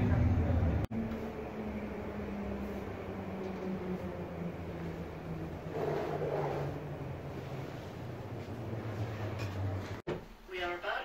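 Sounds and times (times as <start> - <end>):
low mechanical hum of shuttle: 0.0 - 10.0.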